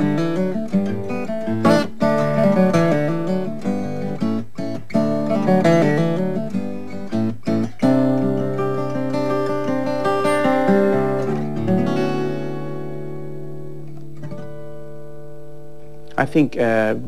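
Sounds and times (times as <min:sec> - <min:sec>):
acoustic guitar fingerstyle: 0:00.0 - 0:17.0.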